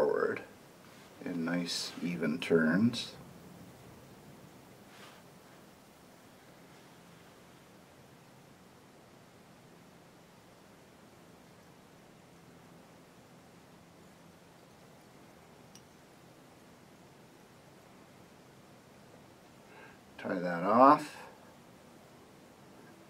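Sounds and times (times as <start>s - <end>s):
faint low hum: 0.0s - 23.0s.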